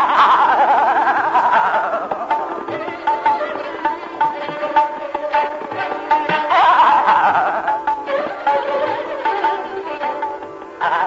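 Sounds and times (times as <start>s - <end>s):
men singing rapid vocal ornaments: 0.0s - 3.1s, 6.3s - 8.1s, 10.8s - 11.0s.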